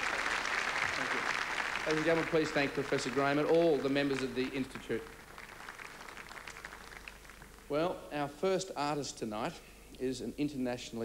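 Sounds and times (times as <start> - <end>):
audience applause: 0.0 - 7.7.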